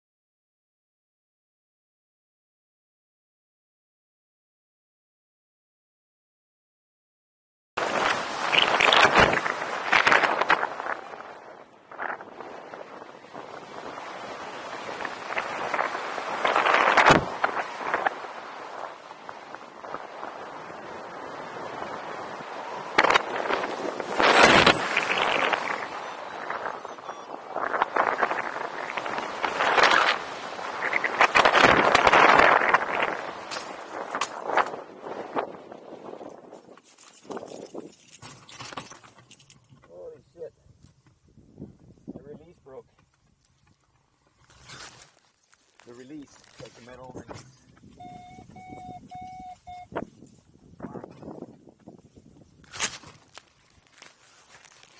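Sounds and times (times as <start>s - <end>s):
wind rushing over microphone: 7.8s - 38.0s, 40.4s - 43.5s, 45.8s - 53.9s.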